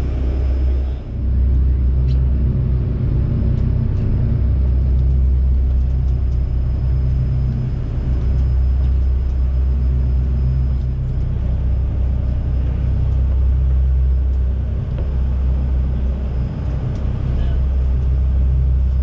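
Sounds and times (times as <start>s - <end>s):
boat engines droning: 0.0s - 19.0s.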